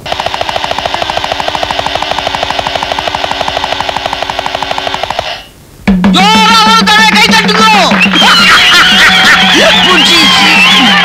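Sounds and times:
fast drum roll: 0.0 - 11.0.

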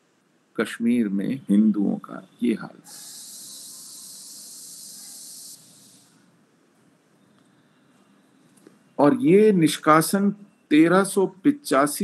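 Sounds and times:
faint hiss: 0.0 - 12.0
high-pitched hiss: 0.6 - 6.4.

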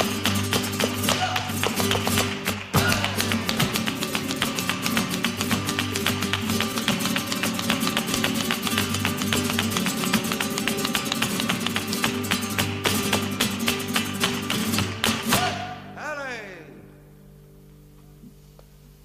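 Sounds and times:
hand-clapping: 0.0 - 15.6
footwork strikes on stage floor: 0.0 - 15.7
flamenco guitars playing: 0.0 - 19.0.

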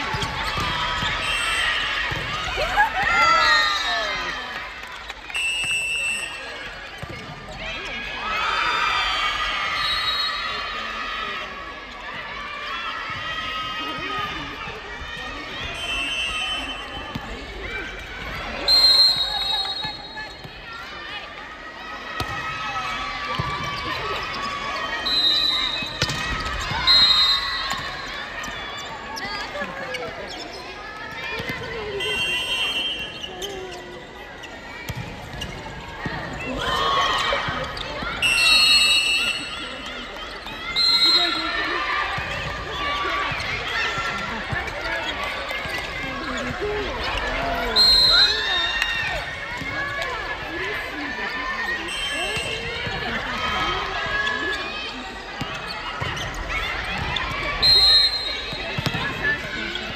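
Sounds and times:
players calling and chatting: 0.0 - 59.9
volleyball bouncing and struck: 25.9 - 26.7.

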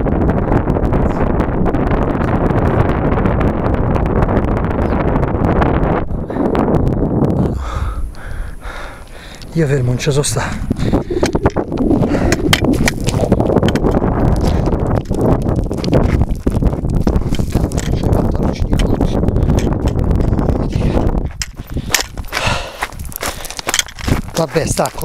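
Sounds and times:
low rumble on microphone: 0.0 - 25.0
footsteps crunching on gravel: 12.4 - 25.0.

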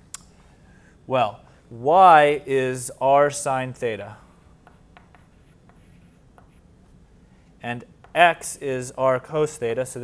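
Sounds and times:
chalk scratching on blackboard: 4.2 - 7.2.

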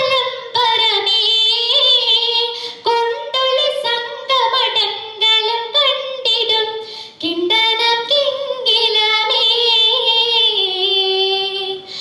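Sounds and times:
girl singing into microphone: 0.0 - 12.0.

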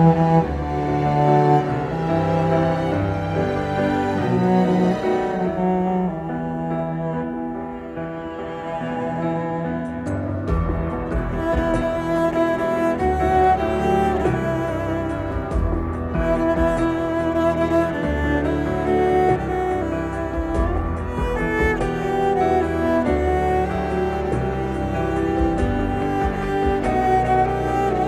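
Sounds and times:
bowed cello: 0.0 - 28.0.

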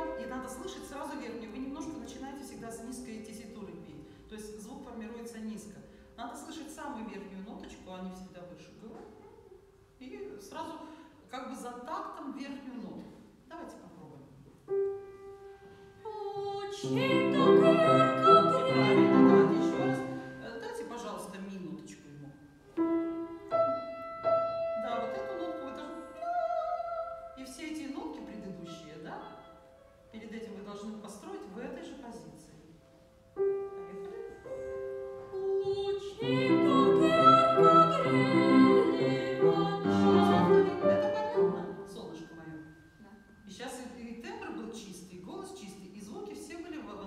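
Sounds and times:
grand piano: 0.0 - 7.8, 14.3 - 43.6
boy singing classical song: 15.9 - 20.4, 23.4 - 27.5, 33.8 - 41.9.

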